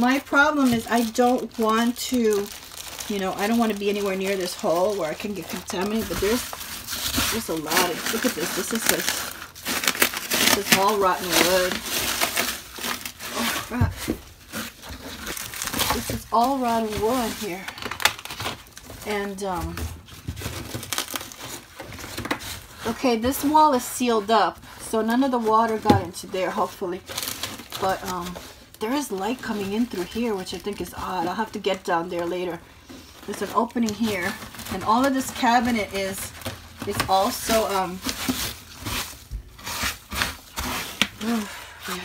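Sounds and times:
dry rotten wood crackling: 0:00.0 - 0:42.0.

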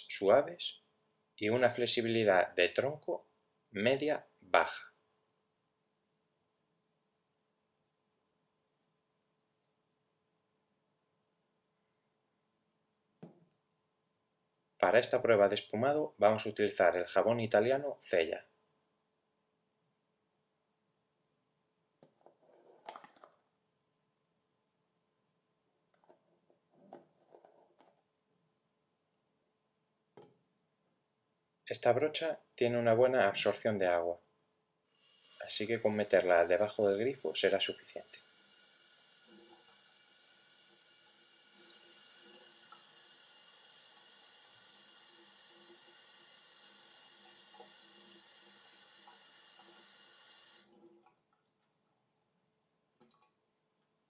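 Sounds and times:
tap water running: 0:35.0 - 0:51.3.

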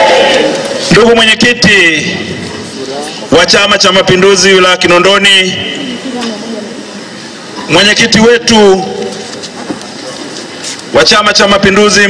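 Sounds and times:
steady background hiss: 0:00.0 - 0:12.0
man speaking over public address: 0:00.8 - 0:05.9, 0:07.6 - 0:09.4, 0:10.9 - 0:12.0.

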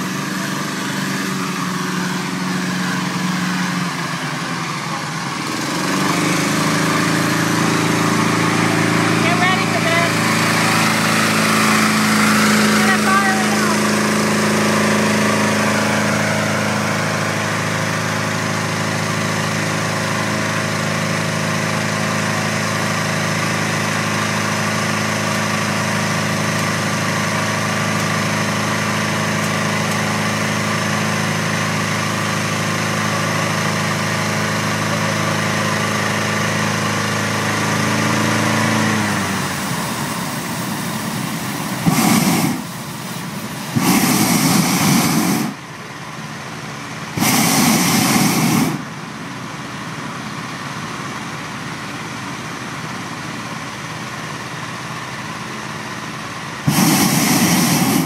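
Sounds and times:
propane burner blast: 0:00.0 - 0:52.2, 0:53.2 - 0:58.0
inflator fan engine running: 0:00.0 - 0:58.0.

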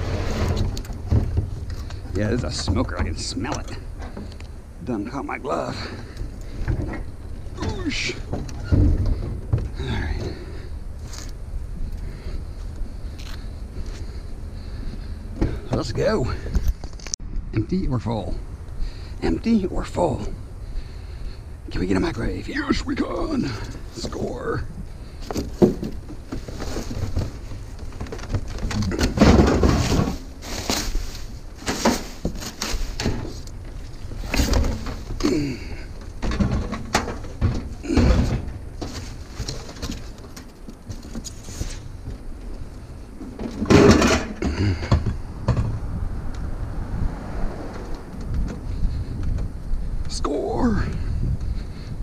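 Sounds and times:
cardboard and styrofoam scraping: 0:00.0 - 0:01.6, 0:26.3 - 0:33.4
knocks and thumps: 0:00.0 - 0:04.4, 0:05.8 - 0:10.7, 0:25.2 - 0:30.8, 0:34.2 - 0:42.2, 0:43.2 - 0:45.9.

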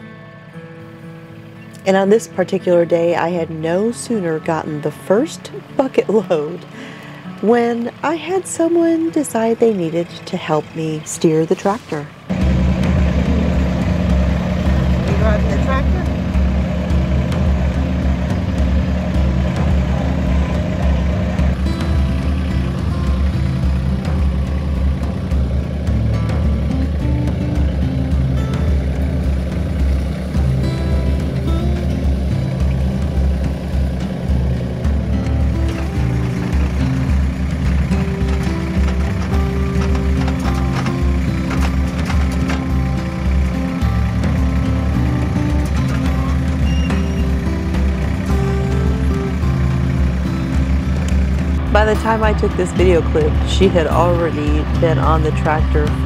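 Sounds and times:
soft background music: 0:00.0 - 0:56.0
tractor engine running: 0:00.0 - 0:56.0.

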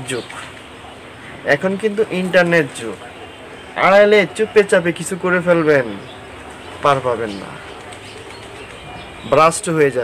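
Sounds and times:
man speaking: 0:00.0 - 0:07.9, 0:08.9 - 0:10.0.

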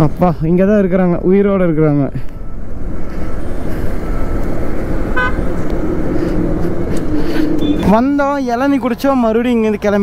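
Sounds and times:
wind and road noise: 0:00.0 - 0:10.0
motorcycle engine: 0:02.5 - 0:07.9
vehicle horn toot: 0:05.1 - 0:05.5, 0:07.6 - 0:07.9.

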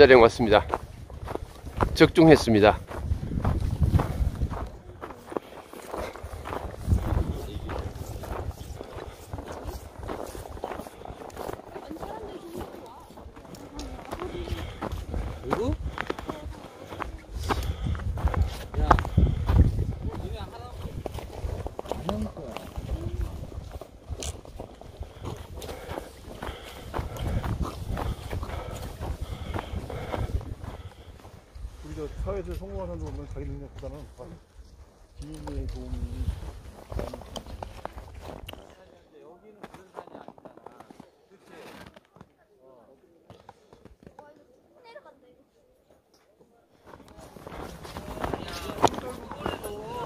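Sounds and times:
boots crunching through snow: 0:00.1 - 0:32.2, 0:46.9 - 0:50.0.

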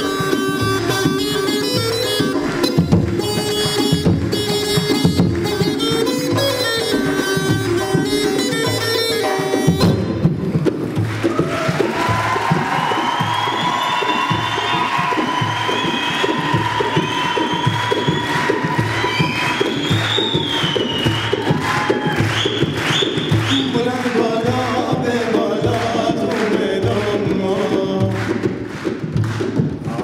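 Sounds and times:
bagpipe melody: 0:00.0 - 0:10.2
steady drum beat: 0:00.0 - 0:30.0
audience cheering: 0:10.9 - 0:24.2.

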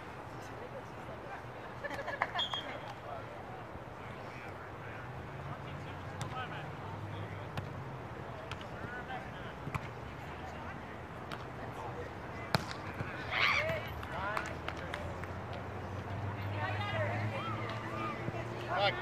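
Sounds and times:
people talking and calling out: 0:00.0 - 0:19.0.

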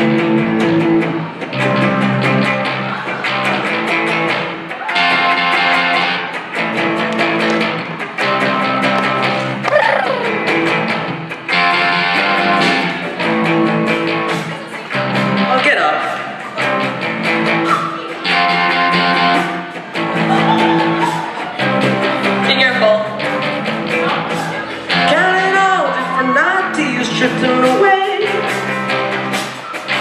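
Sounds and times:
bass guitar: 0:00.0 - 0:30.0
electric guitar strumming: 0:00.0 - 0:30.0.

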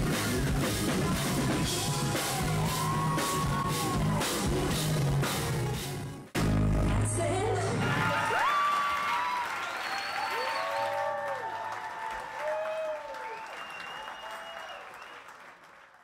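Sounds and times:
audience cheering and shouting: 0:00.0 - 0:05.3, 0:07.6 - 0:13.6
audience applauding: 0:00.3 - 0:05.5, 0:07.9 - 0:16.0
whistles: 0:09.6 - 0:11.1, 0:13.1 - 0:15.4.

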